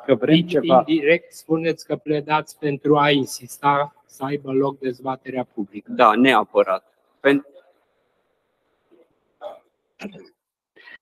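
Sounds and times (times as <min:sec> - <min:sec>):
room noise: 0:00.0 - 0:10.9.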